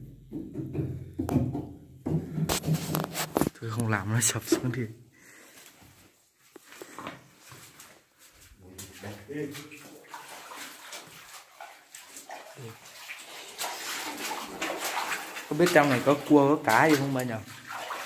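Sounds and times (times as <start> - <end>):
rustling from movement: 2.5 - 3.7.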